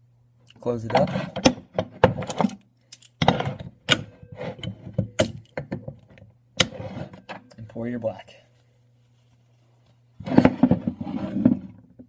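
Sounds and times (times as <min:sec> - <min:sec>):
metal mold scraping on wooden table: 0:00.9 - 0:02.2, 0:03.2 - 0:05.1, 0:06.6 - 0:07.4, 0:10.2 - 0:11.8.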